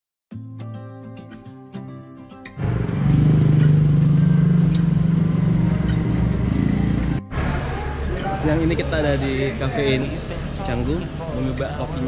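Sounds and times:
vehicle engine running: 2.6 - 8.2.

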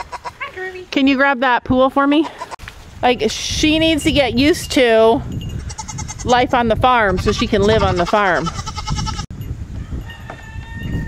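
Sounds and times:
wind rumbling on microphone: 2.6 - 11.0.

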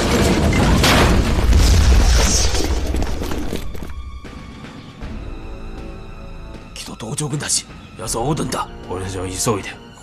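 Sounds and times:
explosion boom: 0.0 - 3.5
debris and crackle: 0.0 - 4.4.

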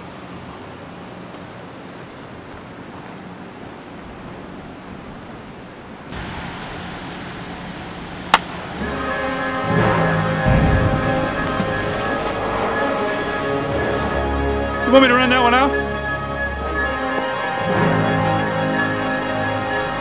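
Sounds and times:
outdoor ambient noise: 0.0 - 20.0
baseball bat hitting ball: 8.3 - 8.6
background music with chords: 8.7 - 20.0.

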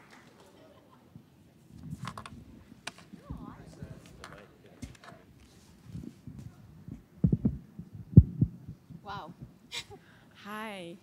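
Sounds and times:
microphone being bumped: 1.8 - 3.8, 5.8 - 9.6.

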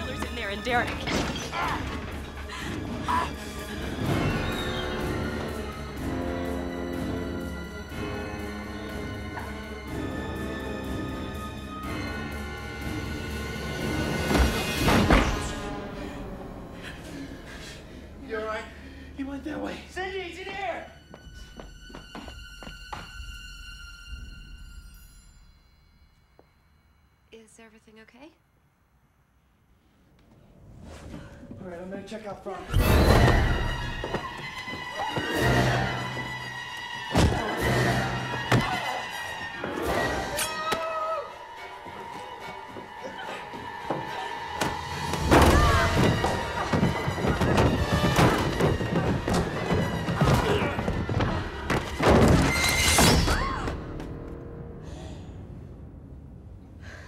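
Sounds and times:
tense horror film score: 0.0 - 27.3, 32.6 - 57.0.

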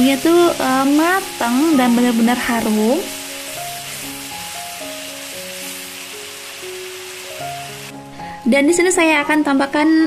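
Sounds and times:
chili paste sizzling in oil: 0.0 - 8.4
slow held-note background music: 0.0 - 10.0.

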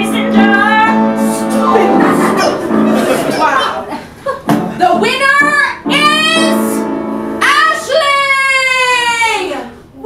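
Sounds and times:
woman singing: 0.0 - 1.2.

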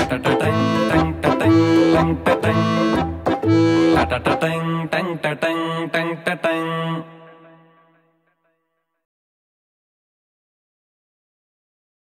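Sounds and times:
film song accompaniment: 0.0 - 6.7
person singing rhythmic syllables: 0.0 - 7.8.

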